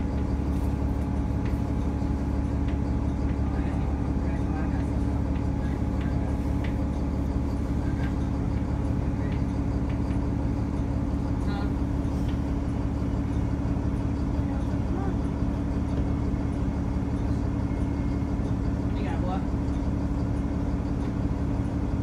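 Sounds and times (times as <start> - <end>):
bus engine idling: 0.0 - 22.0.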